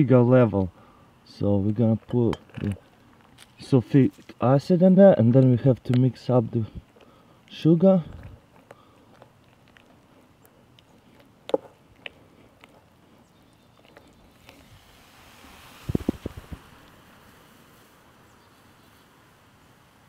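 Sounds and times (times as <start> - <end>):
reacting mixture hissing: 14.2 - 20.0.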